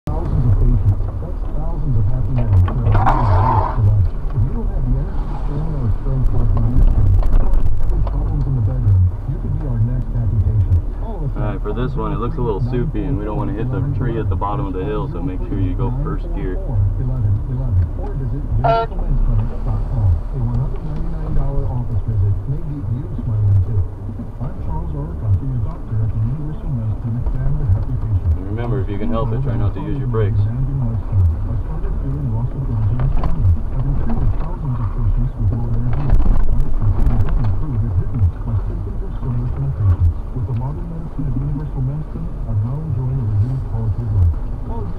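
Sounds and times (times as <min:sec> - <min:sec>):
engine running at low revs: 0:00.1 - 0:44.9
knocks and rattles over bumps: 0:06.3 - 0:08.6.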